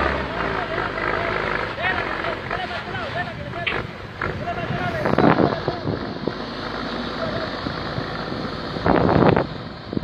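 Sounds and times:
truck engine labouring: 0.0s - 10.0s
wind buffeting microphone: 3.2s - 10.0s.

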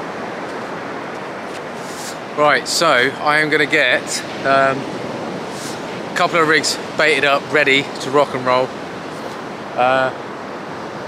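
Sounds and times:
small waves washing onto sand: 0.0s - 11.0s.

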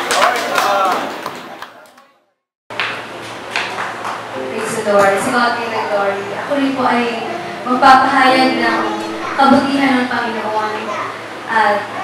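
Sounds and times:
voice with room echo: 4.4s - 12.0s.

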